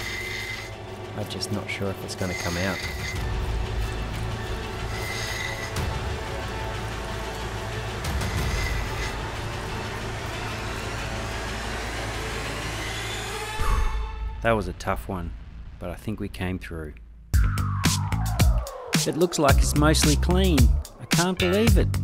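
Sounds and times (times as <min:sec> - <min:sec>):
grinding wheel grinding stone: 0:00.0 - 0:13.4
background music: 0:00.0 - 0:22.0.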